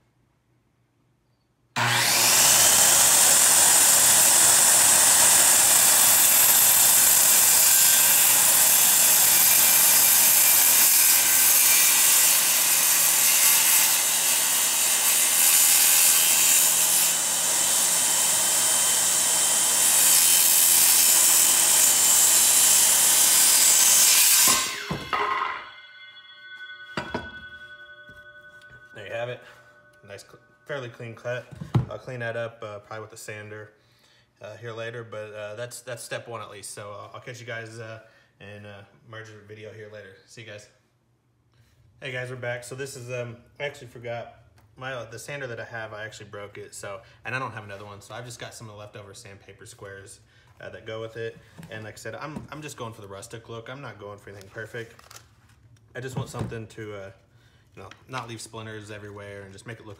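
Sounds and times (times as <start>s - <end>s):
circular saw cutting wood: 1.8s - 30.4s.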